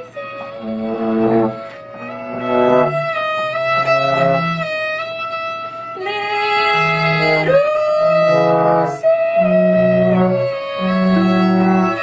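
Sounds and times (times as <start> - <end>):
bass clarinet: 0.0 - 12.0
violin: 0.0 - 12.0.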